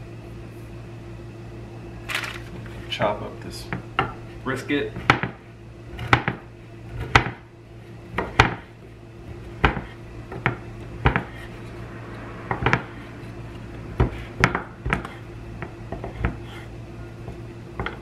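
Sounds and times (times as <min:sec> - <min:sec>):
knife chopping on wooden board: 0:04.9 - 0:05.4, 0:06.0 - 0:07.4, 0:08.1 - 0:08.7, 0:09.3 - 0:11.5, 0:12.5 - 0:13.0, 0:13.9 - 0:18.0.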